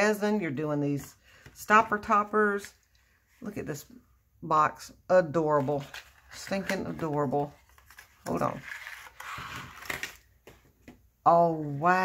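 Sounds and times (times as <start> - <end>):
paper box rustling and scraping: 5.6 - 10.2.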